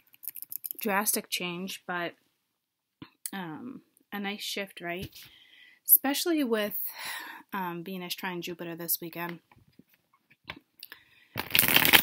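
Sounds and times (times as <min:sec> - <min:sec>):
cards being shuffled: 0:11.4 - 0:12.0.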